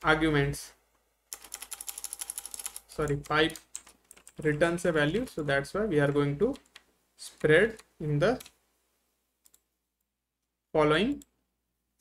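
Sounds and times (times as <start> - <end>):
computer keyboard keys clicking: 1.3 - 4.4.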